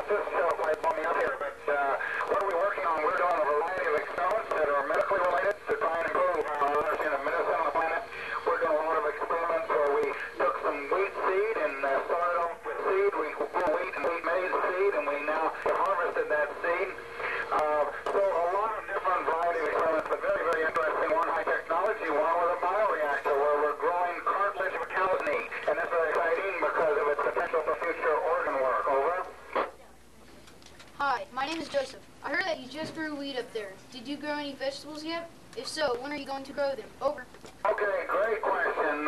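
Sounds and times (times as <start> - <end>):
person speaking over radio loudspeaker: 0.0 - 29.8, 31.0 - 39.0.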